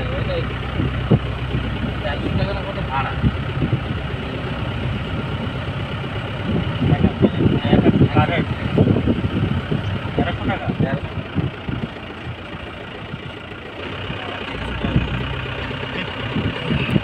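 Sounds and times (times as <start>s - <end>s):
car engine and road hum: 0.0s - 17.0s
voices talking: 0.0s - 17.0s.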